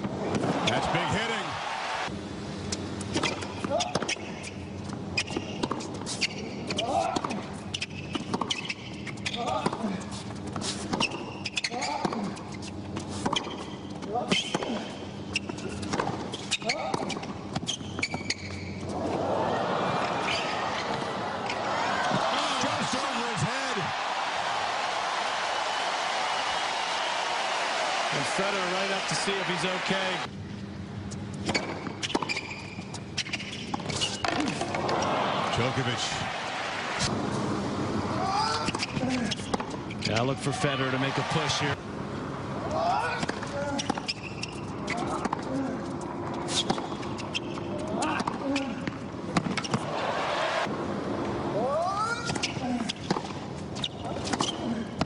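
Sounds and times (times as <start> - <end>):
crowd applauding and cheering: 0.4 - 2.1, 19.1 - 30.3, 34.7 - 37.1, 40.4 - 41.8, 49.8 - 50.7.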